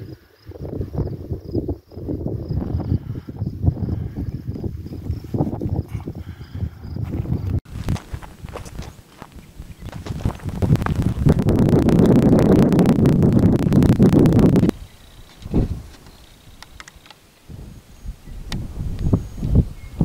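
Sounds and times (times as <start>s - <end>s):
wind buffeting microphone: 0.0s - 16.8s, 17.4s - 20.0s
faint high pulsing chirp: 16.0s - 20.0s.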